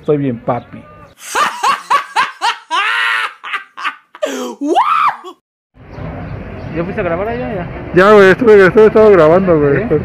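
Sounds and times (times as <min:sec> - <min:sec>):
girl laughing: 0:01.2 - 0:05.4.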